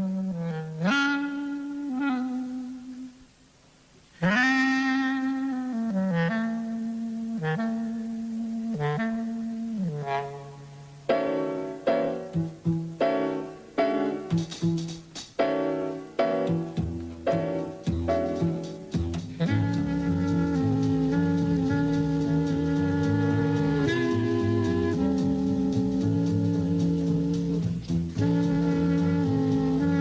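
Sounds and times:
jazz clarinet slow melody: 0.0 - 3.4, 4.1 - 30.0.

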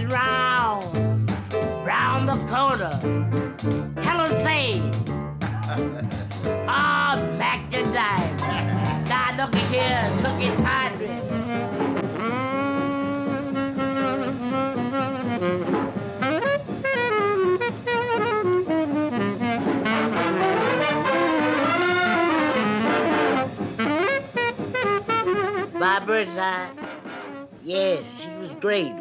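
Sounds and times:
big band jazz: 0.0 - 29.0
tenor saxophone solo: 9.8 - 25.8, 28.2 - 29.0.

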